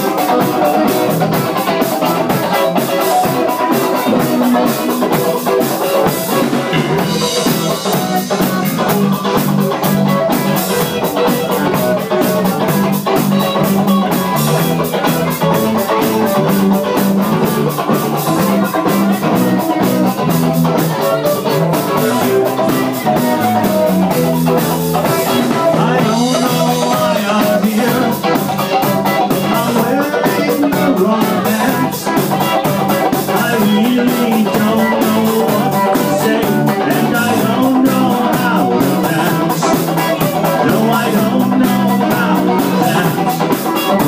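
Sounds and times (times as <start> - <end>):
drum kit beat: 0.0 - 44.0
electric guitars: 0.0 - 44.0.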